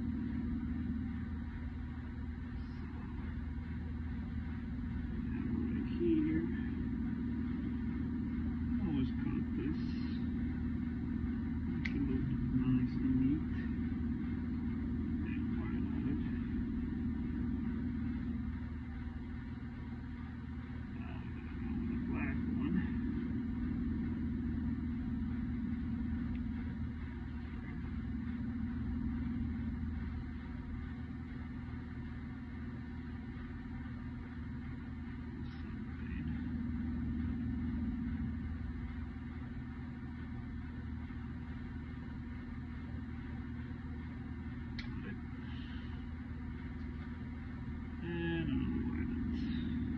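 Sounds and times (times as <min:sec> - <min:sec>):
machinery drone: 0:00.0 - 0:49.9
faint clicks of wires: 0:44.7 - 0:45.1.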